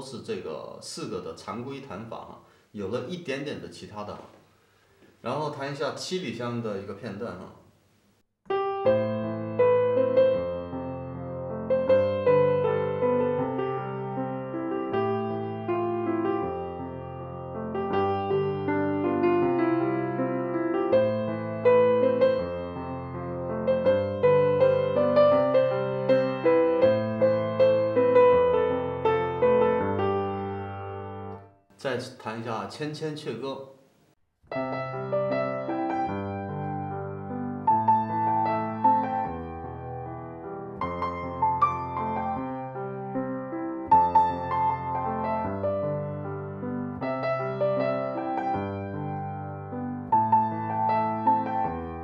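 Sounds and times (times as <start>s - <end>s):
piano chords: 8.5s - 31.6s, 34.5s - 52.0s.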